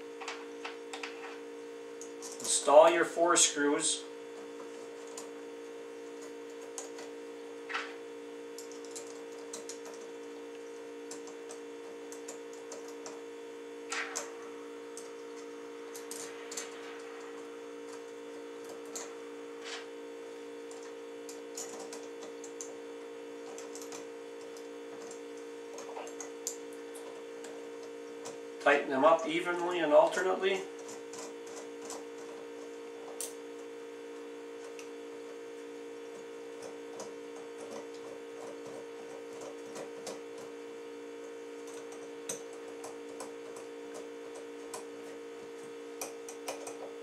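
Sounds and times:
steady hum: 0.0s - 47.0s.

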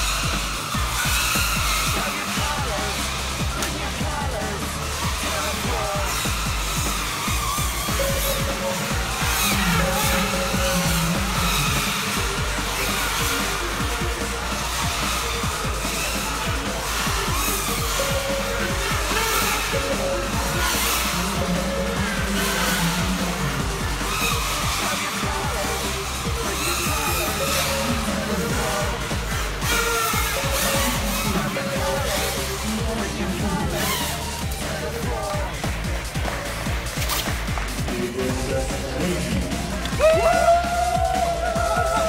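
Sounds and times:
music with steady beat: 0.0s - 42.0s
wavering high motor whine: 0.0s - 42.0s.

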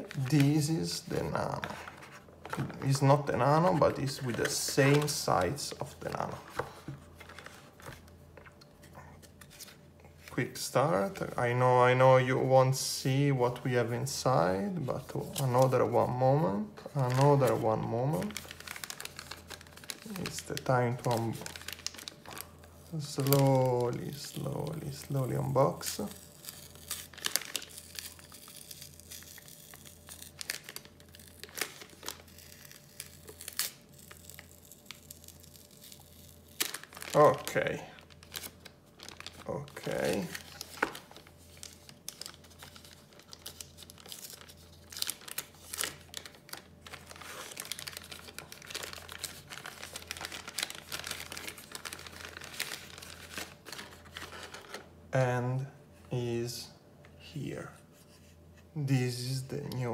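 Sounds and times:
packaging rustling: 0.0s - 9.8s, 16.8s - 54.9s
low steady hum: 0.0s - 59.9s
plastic bag crinkling: 16.9s - 54.9s.

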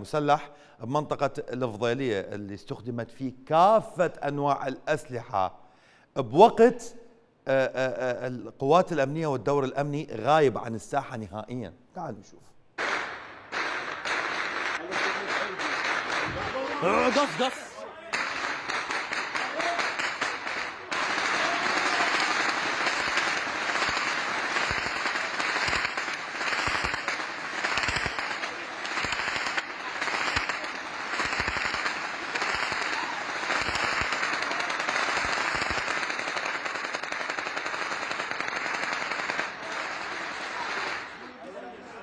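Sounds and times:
automatic gunfire: 12.8s - 17.5s, 18.2s - 41.1s.

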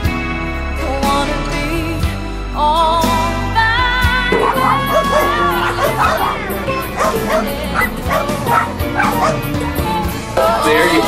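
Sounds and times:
background music: 0.0s - 11.0s
dog yipping and barking: 4.3s - 9.6s.

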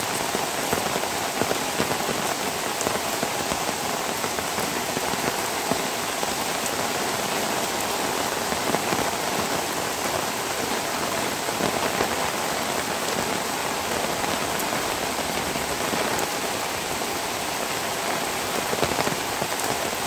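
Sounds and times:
steady rain falling: 0.0s - 20.0s.

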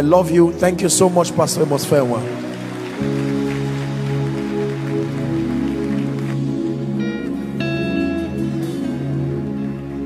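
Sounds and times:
soft music of held chords: 0.0s - 10.0s.

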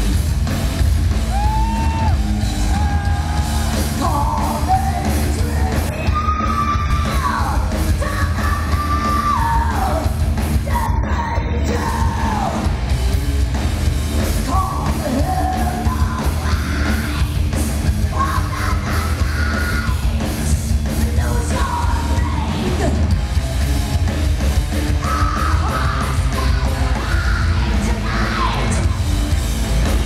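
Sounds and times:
live heavy metal band: 0.0s - 30.0s
woman singing and yelling: 4.0s - 10.0s, 10.6s - 12.5s, 18.1s - 20.0s, 21.1s - 22.9s.

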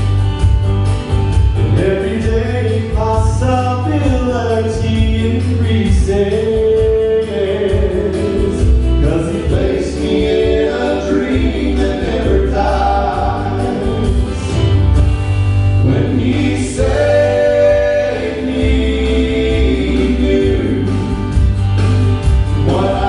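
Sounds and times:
steady bass line: 0.0s - 23.0s
men singing in harmony: 1.7s - 14.6s, 15.8s - 21.2s, 22.6s - 23.0s.

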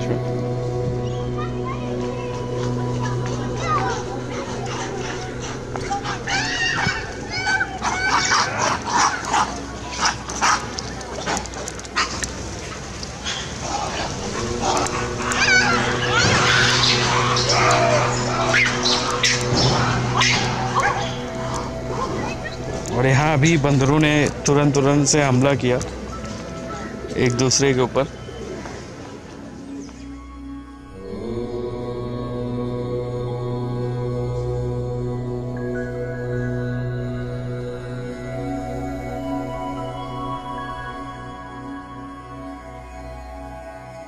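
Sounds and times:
droning mantra chant: 0.0s - 10.8s, 13.6s - 28.3s, 29.7s - 44.0s
monkeys crying: 1.4s - 10.8s, 13.2s - 24.4s.

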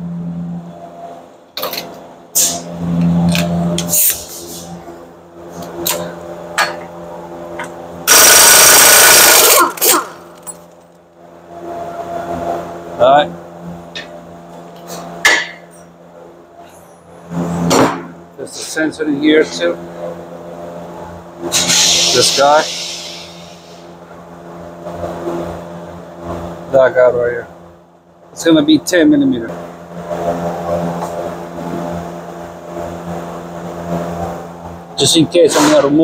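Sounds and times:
air impact wrench hammering: 8.0s - 10.5s, 21.5s - 23.8s.

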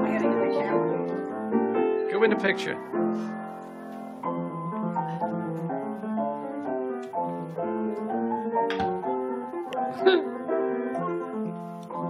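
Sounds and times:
player piano playing a tune: 0.0s - 12.0s.

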